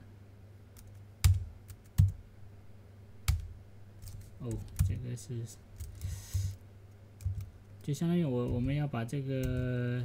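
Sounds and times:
faint low hum: 0.0s - 10.0s
keyboard keystrokes: 7.2s - 7.5s.

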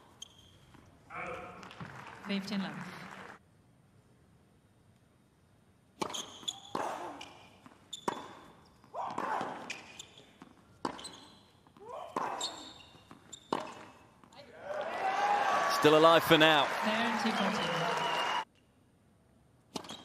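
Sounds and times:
crowd applause: 1.6s - 3.4s, 14.7s - 18.4s
tennis ball bounces: 6.0s - 12.4s, 13.0s - 14.3s
racket striking tennis ball: 8.0s - 9.9s, 13.1s - 14.3s.

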